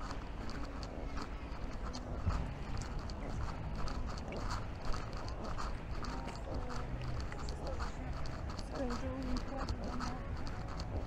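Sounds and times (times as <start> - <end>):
footsteps on path: 0.0 - 11.0
low background rumble: 0.0 - 11.0.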